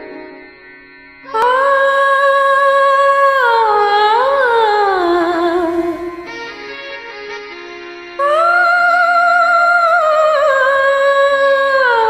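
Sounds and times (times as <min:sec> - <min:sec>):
woman humming a melody: 0:01.3 - 0:06.3, 0:08.2 - 0:12.0.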